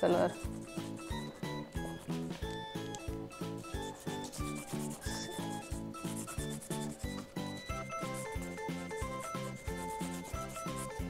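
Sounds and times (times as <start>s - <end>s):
crayon rubbing on corrugated cardboard: 0.0s - 2.4s, 3.5s - 11.0s.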